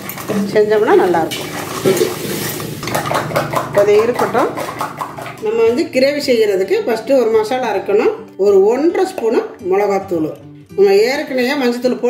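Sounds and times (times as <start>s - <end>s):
crab shells clattering on metal bowl: 0.0s - 5.8s.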